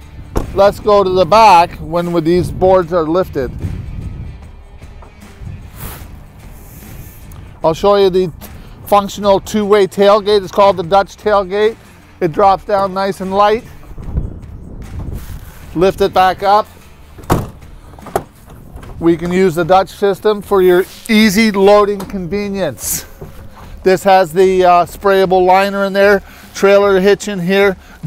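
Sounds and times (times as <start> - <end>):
background music with low line: 0.0 - 28.0
tailgate shutting with a thud: 0.3 - 0.6, 17.2 - 19.0.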